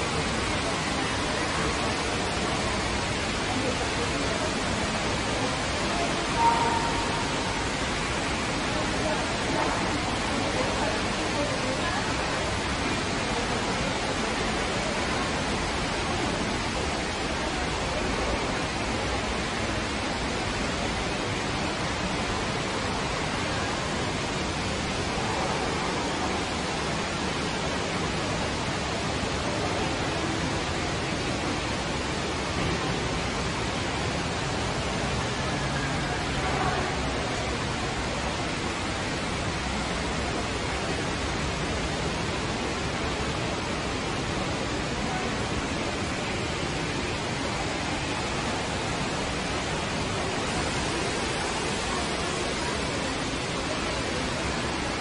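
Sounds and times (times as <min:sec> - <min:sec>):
distant voices murmuring: 0:00.0 - 0:55.0
steady rushing noise: 0:00.0 - 0:55.0.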